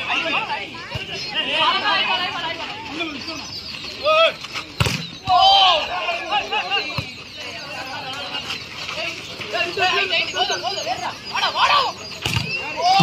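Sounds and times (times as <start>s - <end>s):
people shouting: 5.2s - 7.0s, 10.5s - 13.0s.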